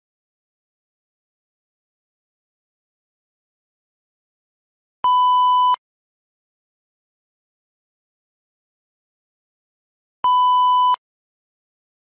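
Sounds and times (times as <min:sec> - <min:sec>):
electronic beep: 0:10.3 - 0:11.0.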